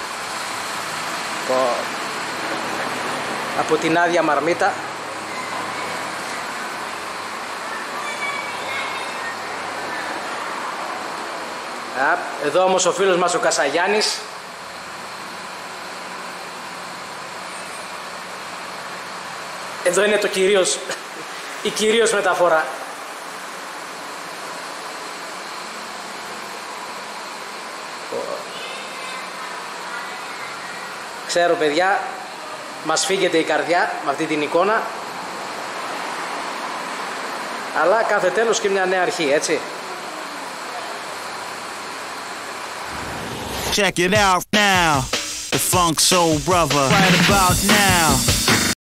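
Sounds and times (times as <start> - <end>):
faint high squeals: 5.2 - 6.6, 7.6 - 10.6
steady rushing noise: 42.8 - 44.3.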